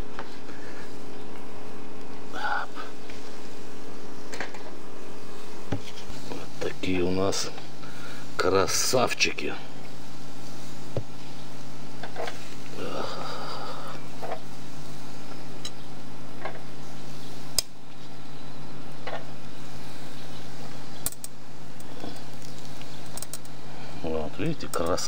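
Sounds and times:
faint sizzle of grilled meat: 0:00.0 - 0:25.0
steady low hum: 0:00.0 - 0:25.0.

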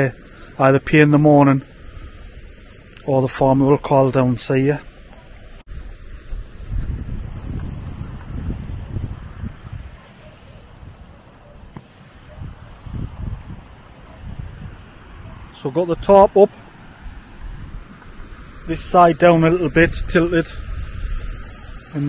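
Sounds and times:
wind buffeting microphone: 0:01.2 - 0:22.0.

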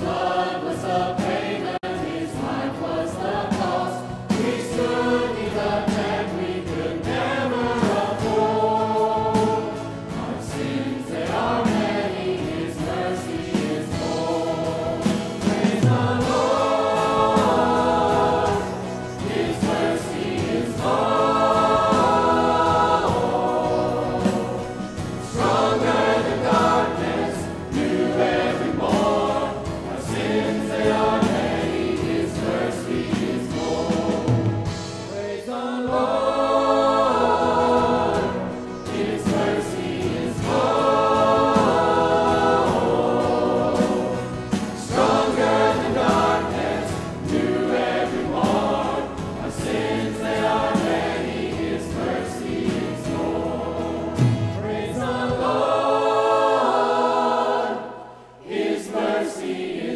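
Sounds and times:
choir singing gospel song: 0:00.0 - 0:59.9
instrumental accompaniment: 0:00.0 - 0:59.9.

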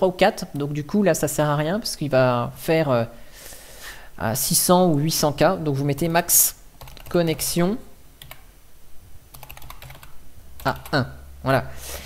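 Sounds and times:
typing on computer keyboard: 0:06.8 - 0:07.5, 0:08.2 - 0:08.4, 0:09.3 - 0:11.0.

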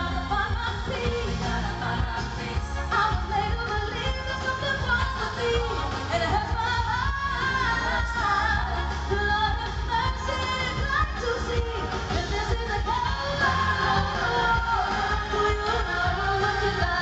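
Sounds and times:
live band with heavy bass: 0:00.0 - 0:17.0
woman singing: 0:00.0 - 0:17.0.

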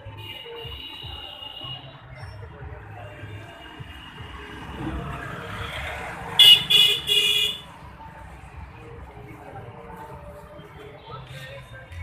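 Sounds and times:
street traffic noise: 0:00.0 - 0:12.0
vehicle horn honking: 0:06.4 - 0:07.6.

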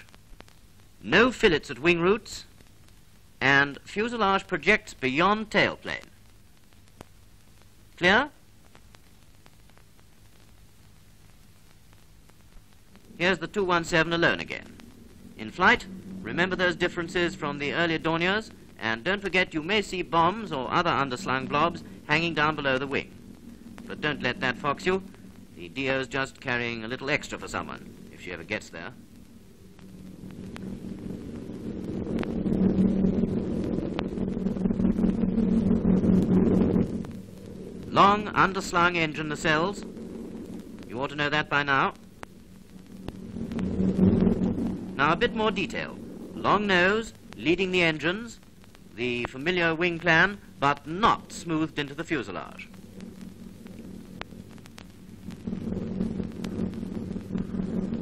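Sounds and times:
film crackle clicks: 0:00.0 - 0:58.0
aircraft engines droning: 0:13.0 - 0:58.0.

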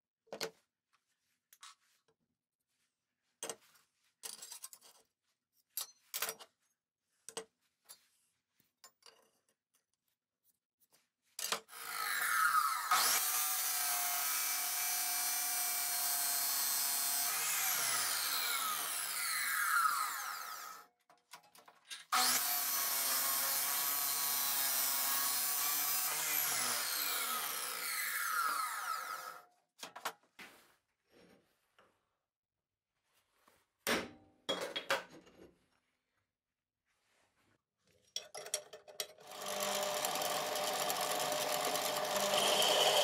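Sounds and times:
chop saw cutting metal: 0:11.6 - 0:20.9, 0:22.1 - 0:29.4, 0:39.2 - 0:43.0.

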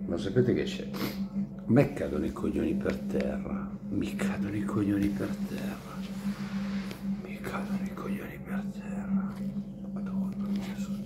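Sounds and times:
steady low hum: 0:00.0 - 0:11.0
man half-whispering: 0:07.2 - 0:11.0.

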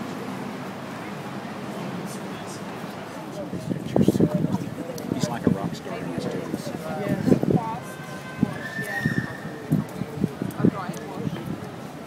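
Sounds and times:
people chatting: 0:00.0 - 0:11.8.

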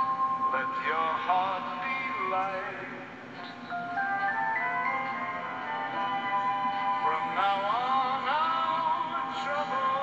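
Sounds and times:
christmas song on radio: 0:00.0 - 0:10.0.

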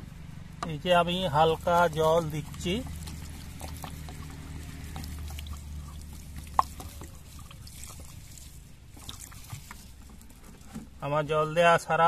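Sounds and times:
water drops ticking on straw: 0:01.2 - 0:10.7.

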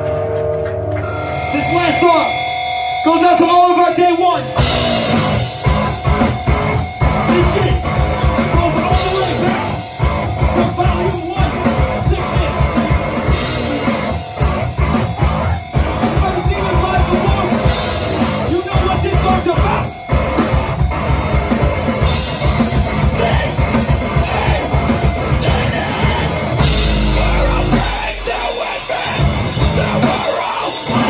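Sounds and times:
distorted electric guitar: 0:00.0 - 0:31.0
drum kit: 0:00.0 - 0:31.0
bass guitar: 0:03.9 - 0:31.0.

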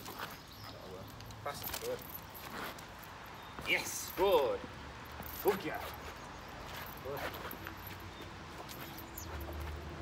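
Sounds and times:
paws and shoes scuffling on bricks: 0:00.0 - 0:04.2, 0:05.1 - 0:10.0.

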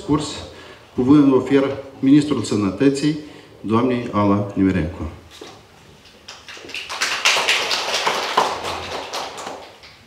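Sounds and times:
audience applauding: 0:06.3 - 0:10.0.

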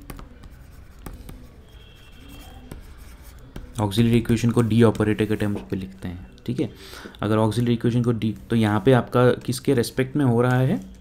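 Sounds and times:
stylus tapping on screen: 0:00.0 - 0:01.6, 0:02.6 - 0:06.0
stylus scratching on screen: 0:00.0 - 0:06.0, 0:07.2 - 0:11.0.

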